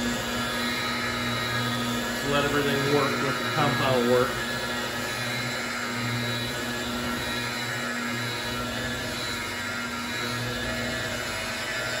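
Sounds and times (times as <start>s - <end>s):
electric polisher motor whine: 0.0s - 12.0s.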